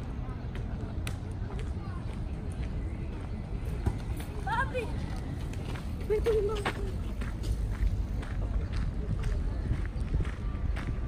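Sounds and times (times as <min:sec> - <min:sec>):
voices of passersby: 0:00.0 - 0:11.0.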